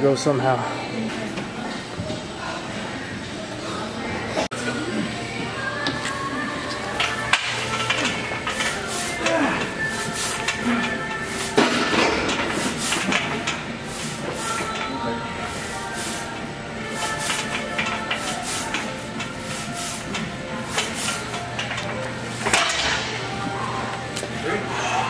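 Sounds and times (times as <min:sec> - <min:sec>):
background music: 0:04.5 - 0:25.0.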